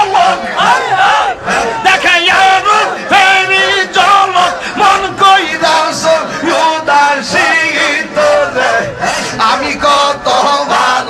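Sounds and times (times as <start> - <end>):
crowd of men chanting: 0.0 - 11.0
man chanting into microphones: 0.0 - 11.0.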